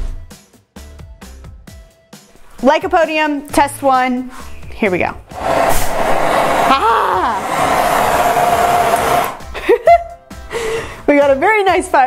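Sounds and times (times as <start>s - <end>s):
fireball rushing: 4.3s - 9.4s
woman laughing and gasping: 9.5s - 11.0s.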